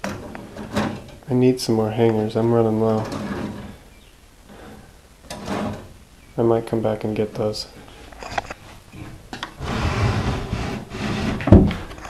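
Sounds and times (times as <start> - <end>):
wire hangers scraping in drawer: 2.9 - 3.8.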